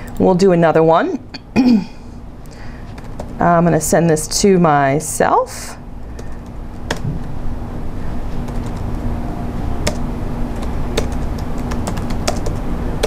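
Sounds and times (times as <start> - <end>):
steady low hum: 0.0 - 13.0
keyboard typing: 2.9 - 3.4, 6.1 - 7.1, 8.4 - 8.9, 9.8 - 13.0.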